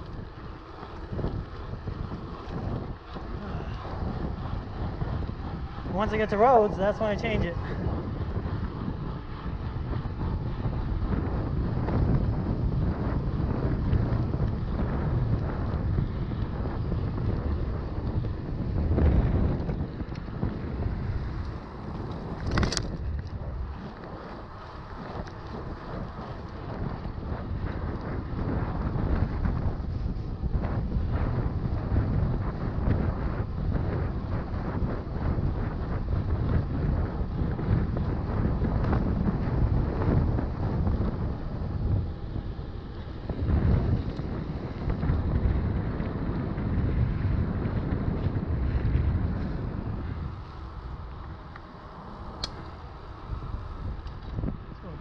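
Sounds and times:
wind buffeting microphone: 0.0 - 55.0
sharp click: 52.4 - 52.8.

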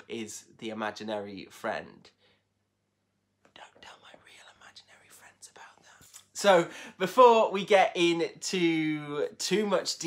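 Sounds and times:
man whispering faintly: 3.5 - 6.5.

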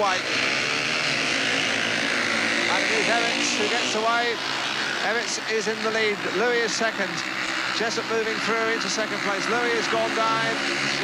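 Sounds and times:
motorcycle engines accelerating: 0.0 - 11.0.

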